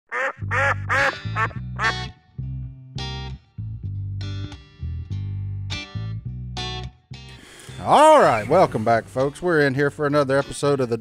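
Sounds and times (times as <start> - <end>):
nasal duck quacks: 0.1 - 2.1
bass line theme music: 0.1 - 11.0.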